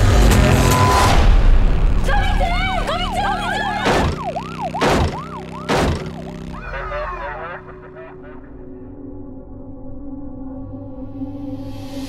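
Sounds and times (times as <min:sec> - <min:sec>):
music: 0:00.0 - 0:04.3, 0:06.6 - 0:12.0
low drone: 0:00.0 - 0:12.0
siren yelping: 0:02.5 - 0:08.6
loud hits: 0:03.8 - 0:06.4.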